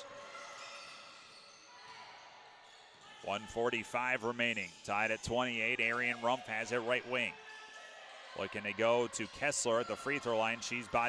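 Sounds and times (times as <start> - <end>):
court and crowd noise: 0.0 - 11.0.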